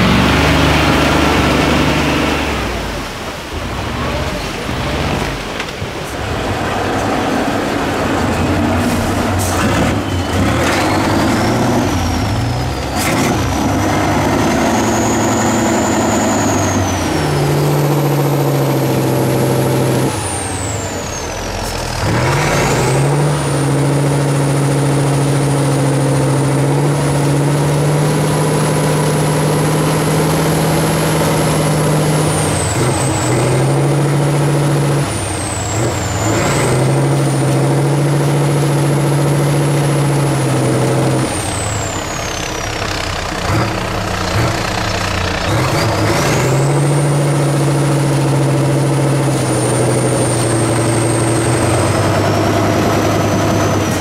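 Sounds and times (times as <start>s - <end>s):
diesel truck engine revving: 0.0s - 54.0s
high whistle: 14.7s - 17.6s.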